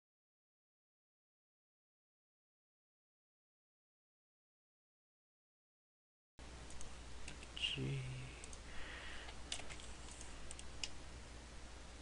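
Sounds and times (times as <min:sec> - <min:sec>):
low electrical hum: 0:06.4 - 0:12.0
computer mouse clicks: 0:06.7 - 0:07.6, 0:08.4 - 0:08.6, 0:09.2 - 0:11.0.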